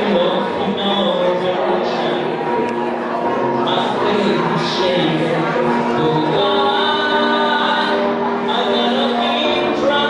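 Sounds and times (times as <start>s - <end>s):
man singing into a microphone: 0.0s - 2.6s, 3.3s - 10.0s.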